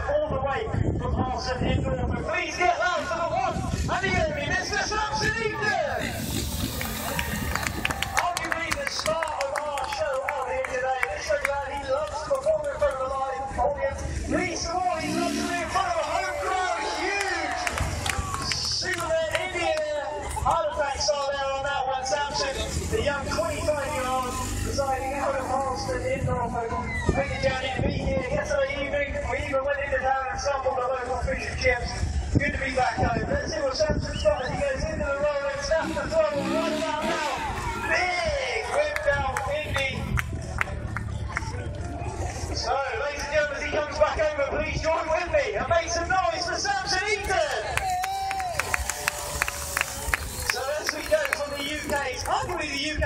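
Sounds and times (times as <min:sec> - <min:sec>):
spectators talking: 0:00.0 - 0:53.0
spectators applauding: 0:06.6 - 0:12.2, 0:16.5 - 0:20.4, 0:47.6 - 0:52.9.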